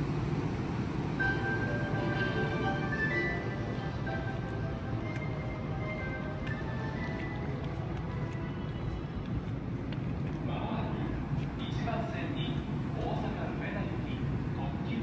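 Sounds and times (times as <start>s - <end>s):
railway rumble: 0.0s - 15.0s.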